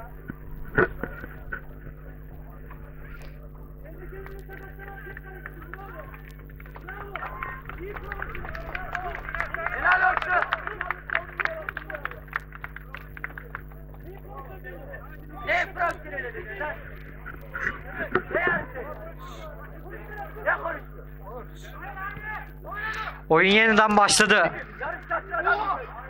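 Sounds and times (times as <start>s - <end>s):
players calling out: 0.0s - 26.0s
steady low hum: 0.0s - 26.0s.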